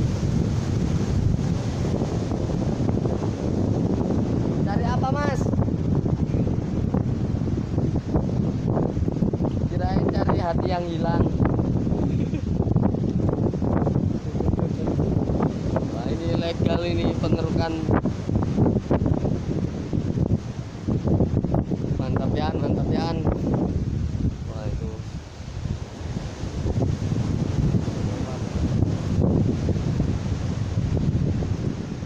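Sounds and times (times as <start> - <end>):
shallow seawater washing: 0.0 - 32.0
wind on microphone: 0.0 - 32.0.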